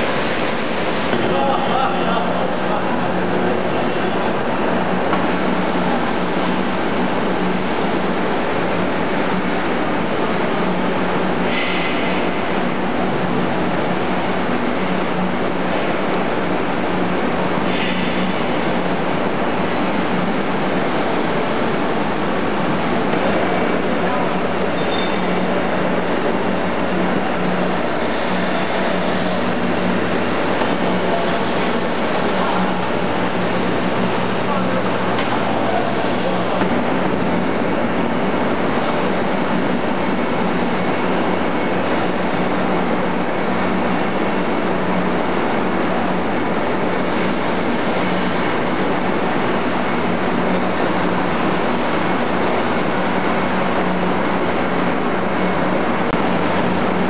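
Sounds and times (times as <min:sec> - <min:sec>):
processing machinery din: 0:00.0 - 0:57.0.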